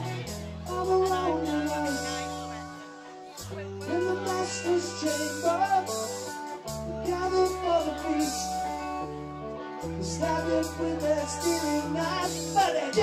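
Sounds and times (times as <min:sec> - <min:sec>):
bending guitar lead melody: 0:00.0 - 0:13.0
live rock band playing: 0:00.0 - 0:13.0.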